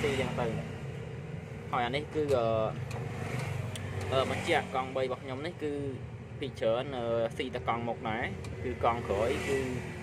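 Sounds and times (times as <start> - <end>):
man talking: 0.0 - 0.8, 1.7 - 2.9, 4.0 - 10.0.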